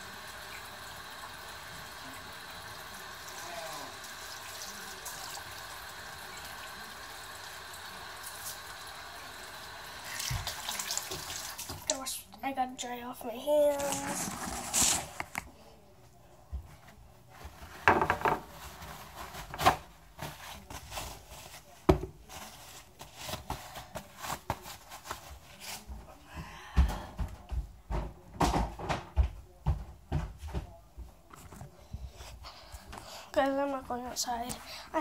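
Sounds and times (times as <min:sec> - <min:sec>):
paper towel crumpling: 0:13.7 - 0:15.4, 0:17.2 - 0:25.9.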